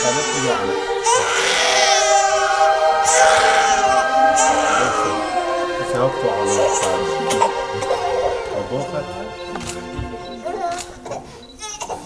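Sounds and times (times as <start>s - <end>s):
choir singing a hymn: 0.0s - 10.7s.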